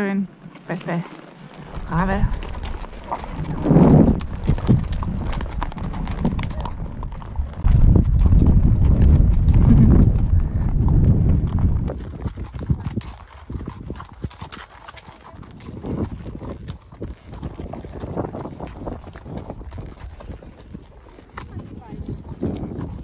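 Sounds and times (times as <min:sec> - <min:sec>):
hooves clip-clopping on gravel: 0:00.0 - 0:23.0
loud low rumble: 0:03.3 - 0:11.9.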